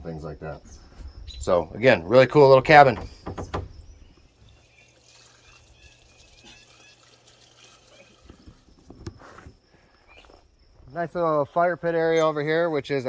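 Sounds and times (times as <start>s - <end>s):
faint bird chirps: 0.2s - 1.9s, 3.0s - 9.0s, 9.6s - 10.9s.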